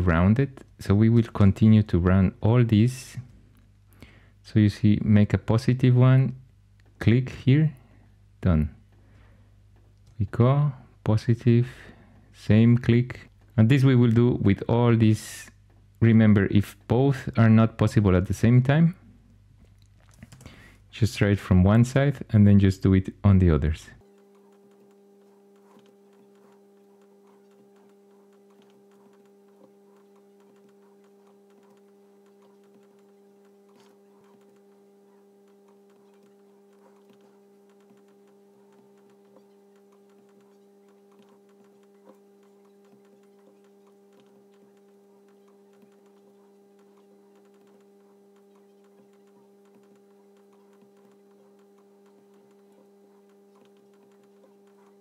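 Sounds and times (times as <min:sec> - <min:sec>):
faint electrical hum: 0:00.0 - 0:55.0
faint clicks: 0:24.0 - 0:55.0.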